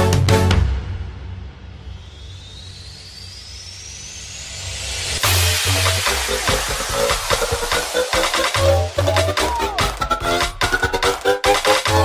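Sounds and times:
rising noise sweep: 1.6s - 10.2s
thin tone gliding upward: 1.8s - 10.0s.

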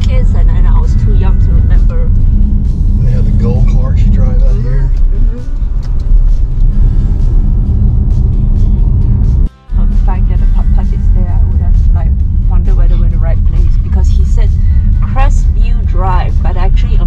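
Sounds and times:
people talking: 0.0s - 2.1s, 3.0s - 5.5s, 9.8s - 17.0s
music: 0.0s - 17.0s
road and engine rumble in car: 0.0s - 17.0s.

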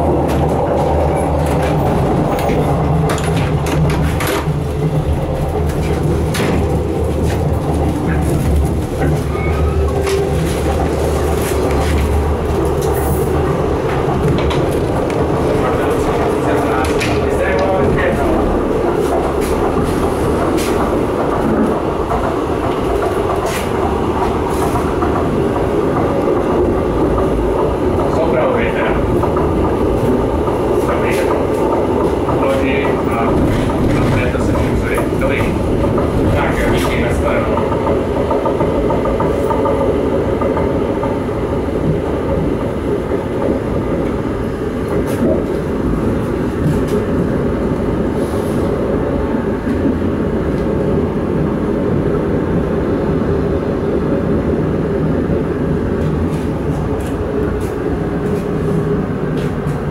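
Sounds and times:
railcar engine and wheels drone: 0.0s - 59.9s.

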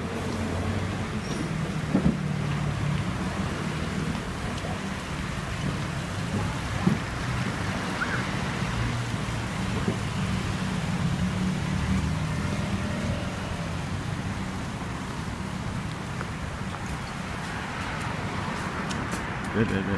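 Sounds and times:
road traffic hum: 0.0s - 19.9s.

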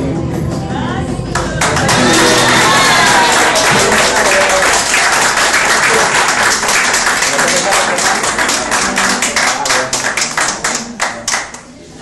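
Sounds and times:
audience clapping: 1.4s - 11.8s.

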